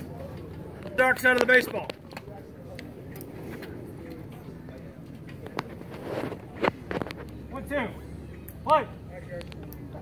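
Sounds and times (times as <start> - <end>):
distant spectators' voices: 0.0 - 10.0.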